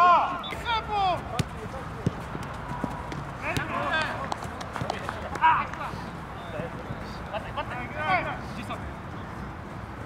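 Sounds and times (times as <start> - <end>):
players shouting: 0.0 - 4.3
football being kicked: 3.1 - 3.8.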